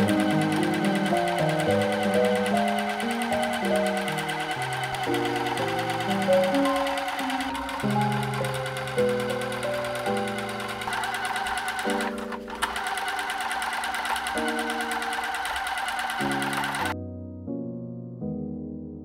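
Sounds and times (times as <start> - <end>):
sewing machine stitching: 0.0 - 17.0
background music: 0.0 - 19.0.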